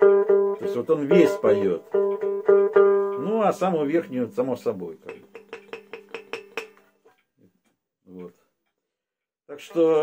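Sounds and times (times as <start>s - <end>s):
plucked string instrument: 0.0s - 7.3s.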